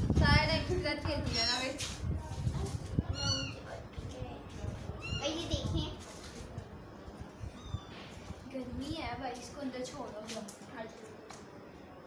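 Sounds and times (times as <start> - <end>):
kitten meowing: 3.1 - 3.6, 5.0 - 5.3, 7.5 - 8.1.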